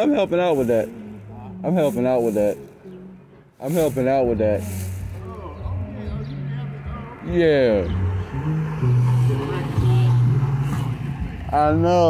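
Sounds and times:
faint voices: 0.0 - 12.0
car engine running: 6.0 - 12.0.

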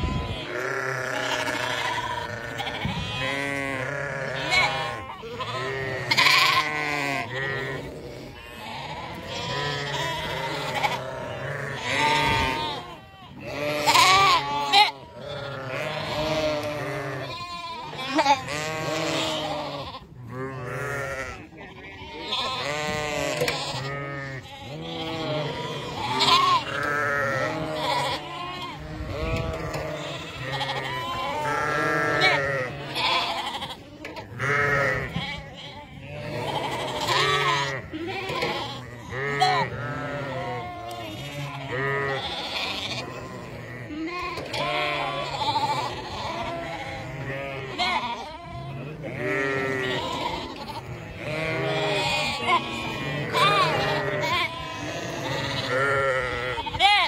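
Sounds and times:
sheep bleating: 0.0 - 57.0.

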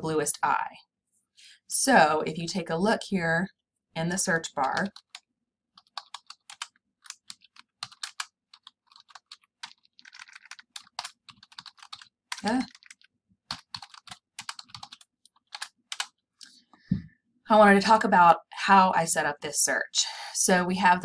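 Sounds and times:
keyboard typing clicks: 4.5 - 5.2, 5.8 - 16.1.

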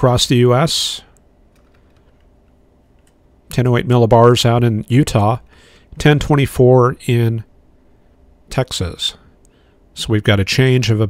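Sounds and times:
keyboard and mouse clicks: 1.5 - 3.2.

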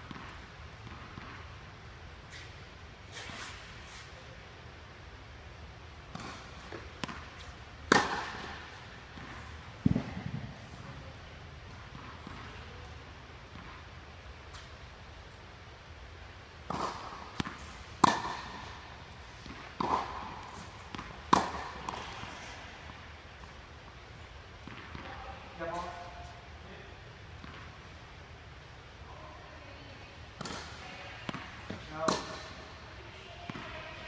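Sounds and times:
tennis ball bouncing on court: 0.0 - 1.6, 6.0 - 10.6, 11.7 - 13.9, 16.6 - 23.6, 24.6 - 26.2, 27.4 - 27.9, 30.4 - 34.0
racket hitting tennis ball: 6.0 - 10.6, 11.7 - 12.7, 16.6 - 23.6, 24.6 - 26.2, 30.4 - 32.8.

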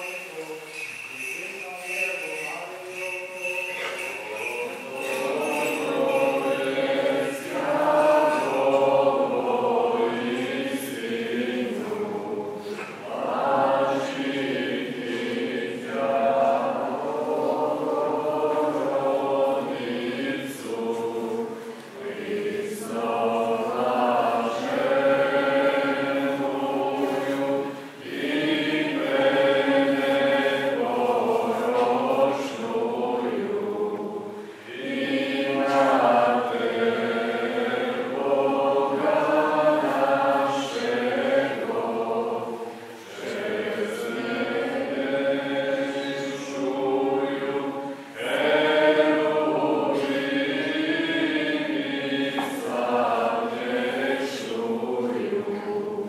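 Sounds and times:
choir chanting: 0.0 - 56.0.

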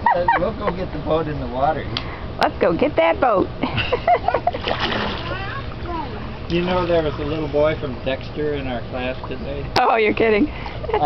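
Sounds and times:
splash into pool water: 4.6 - 5.6
child's voice: 5.2 - 6.3.

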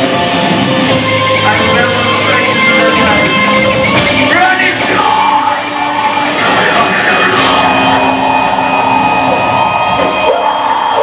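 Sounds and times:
electric guitars ringing chord: 0.0 - 11.0
rock band playing live: 0.0 - 11.0.

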